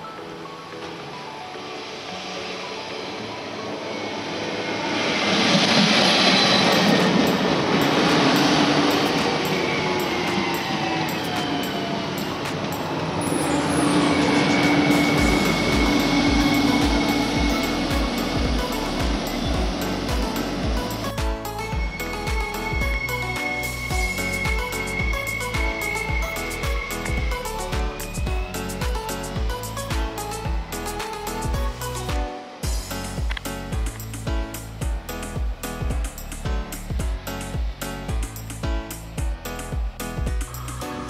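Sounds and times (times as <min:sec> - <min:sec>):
train traction whine: 0:00.0 - 0:32.0
wheels rushing on rail: 0:00.5 - 0:32.0.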